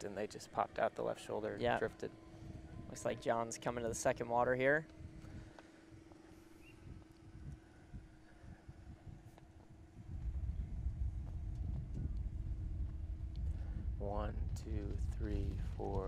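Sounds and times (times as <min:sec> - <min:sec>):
steady low hum: 0:00.0 - 0:16.0
wind buffeting microphone: 0:01.6 - 0:16.0.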